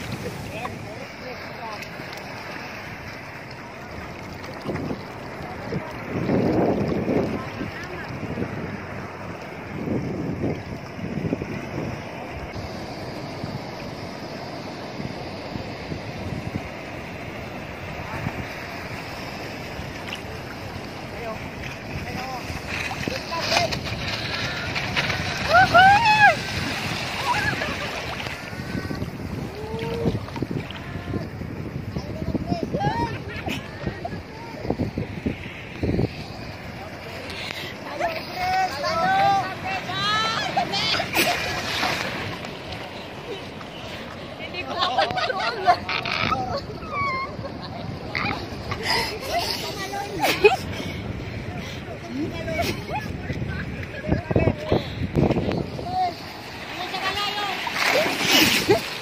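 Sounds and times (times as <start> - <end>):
shallow sea water washing: 0.0 - 59.0
wind buffeting microphone: 0.0 - 59.0
people calling out: 23.1 - 31.4, 37.8 - 41.5.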